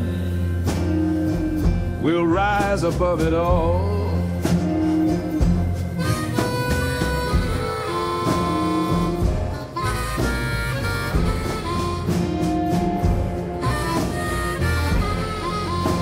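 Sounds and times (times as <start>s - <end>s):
harmonica long notes: 0.0s - 2.4s, 3.4s - 16.0s
bass line: 0.0s - 16.0s
soft drums: 0.0s - 16.0s.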